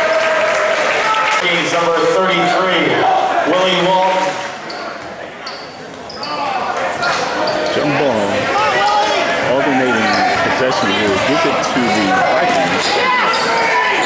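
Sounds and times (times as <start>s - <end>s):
voices and shouts echoing: 0.0s - 14.0s.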